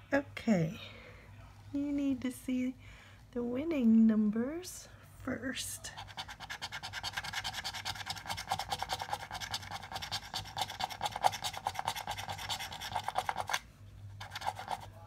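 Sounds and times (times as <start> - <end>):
coin scratching lottery ticket: 5.9 - 13.6, 14.2 - 15.0.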